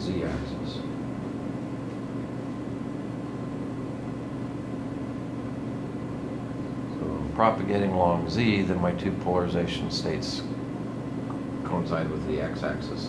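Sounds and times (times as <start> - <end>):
fan humming with faint hiss: 0.0 - 13.0.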